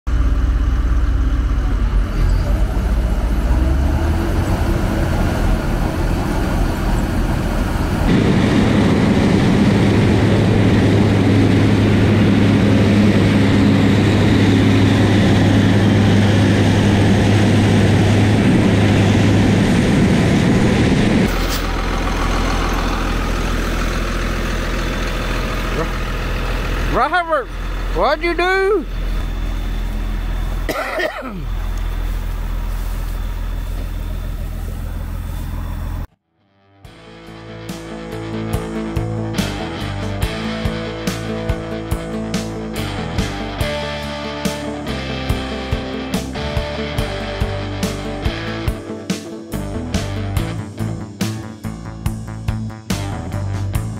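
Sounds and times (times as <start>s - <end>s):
combine engine running: 0.1s - 36.1s, 37.7s - 52.2s
tractor engine low hum: 0.1s - 36.1s, 37.0s - 53.9s
man's voice: 26.9s - 28.9s.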